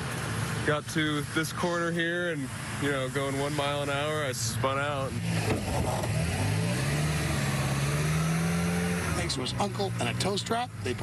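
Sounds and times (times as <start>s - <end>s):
vehicle engine pulling under load: 5.1s - 9.8s.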